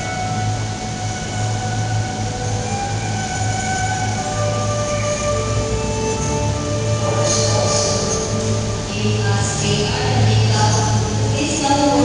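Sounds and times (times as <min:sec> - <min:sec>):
keyboard accompaniment: 0:00.0 - 0:12.0
violin long held notes: 0:00.0 - 0:12.0.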